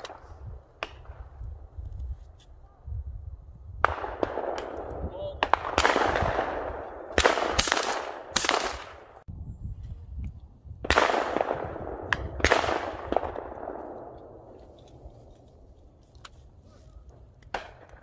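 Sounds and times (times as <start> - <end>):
shotgun shots: 3.8 - 9.2, 10.8 - 14.1.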